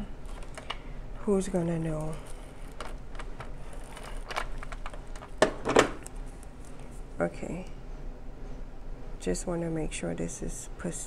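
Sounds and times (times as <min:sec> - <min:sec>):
paper rustling: 0:00.2 - 0:00.8, 0:01.5 - 0:06.9
paper handled by hand: 0:01.5 - 0:06.9.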